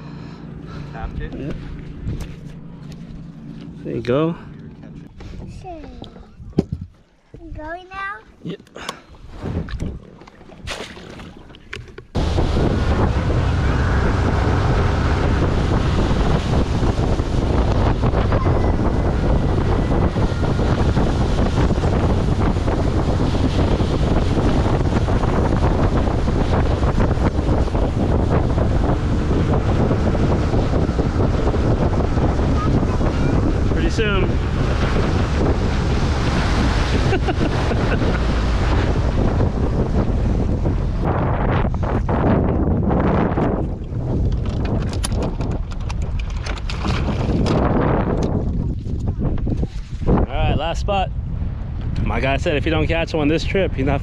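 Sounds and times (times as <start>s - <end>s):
boat running at speed: 0.0s - 7.3s, 8.6s - 54.0s
wind buffeting microphone: 0.0s - 8.1s, 9.1s - 54.0s
water rushing past hull: 9.1s - 50.4s.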